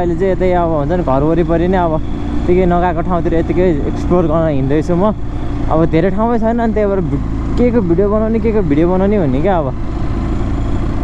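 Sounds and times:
man talking: 0.0 - 9.8
motorcycle engine droning: 0.0 - 11.0.

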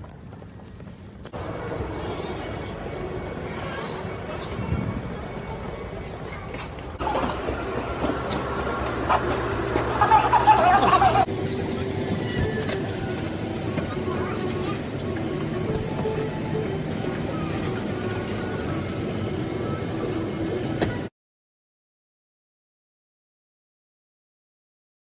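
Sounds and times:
loud voices: 1.4 - 21.1
aircraft cabin hum: 7.0 - 19.7.

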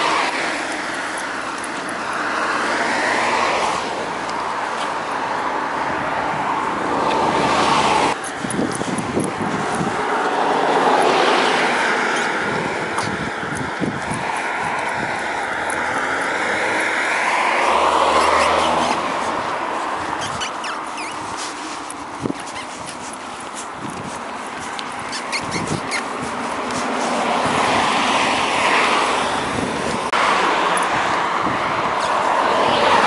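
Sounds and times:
bicycle rolling on asphalt: 0.0 - 33.0
wind on camera: 0.0 - 33.0.

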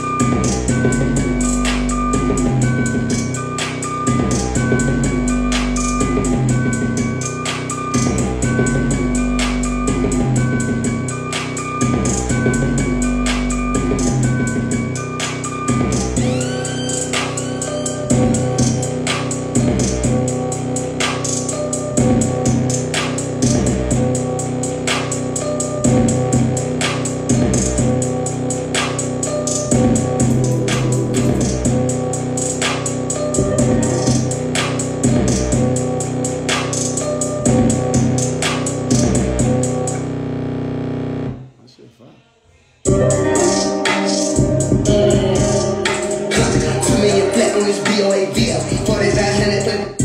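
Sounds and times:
trap beat: 0.0 - 40.0, 42.9 - 50.0.

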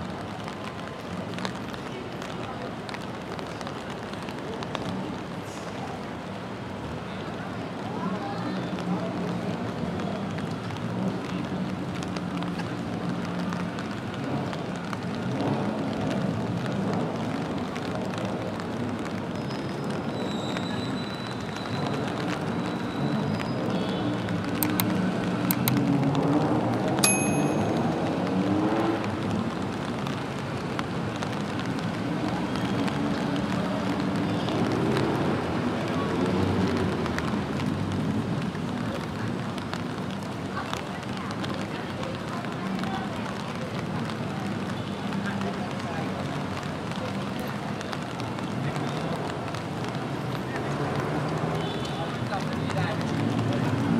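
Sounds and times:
rain hiss and patter: 0.0 - 53.9.

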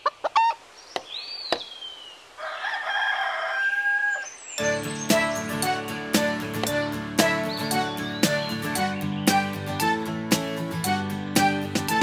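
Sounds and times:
chicken crowing: 2.4 - 4.3
children's music with steady beat: 4.6 - 12.0.

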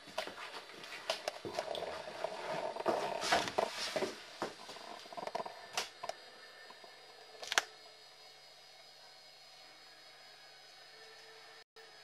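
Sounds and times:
camcorder hiss and whine: 0.0 - 12.0.

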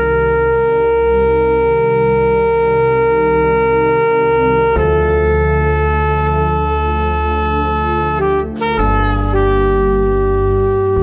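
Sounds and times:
low accompaniment: 0.0 - 11.0
trumpet long note: 0.0 - 11.0.

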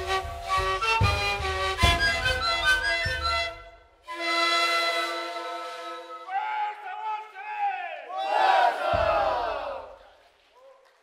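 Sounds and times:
group shouting: 7.6 - 10.0.

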